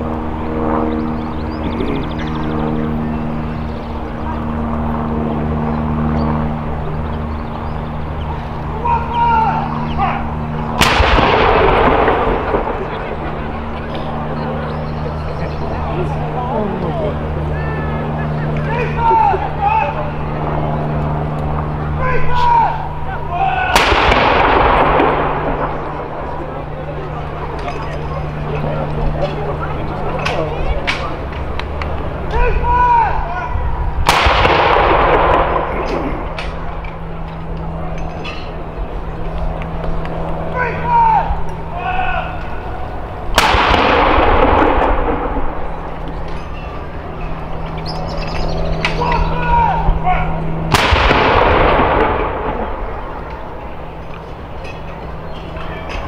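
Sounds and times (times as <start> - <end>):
rumbling echo: 0.0 - 56.0
cannon firing: 10.7 - 13.8, 23.6 - 27.4, 34.0 - 36.8, 43.3 - 46.3, 50.6 - 53.8
gun salute echo: 22.2 - 26.4.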